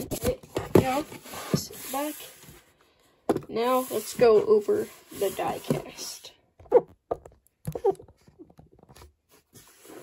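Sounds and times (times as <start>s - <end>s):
cardboard rubbing and scraping: 0.0s - 2.7s, 3.6s - 6.2s, 9.2s - 10.0s.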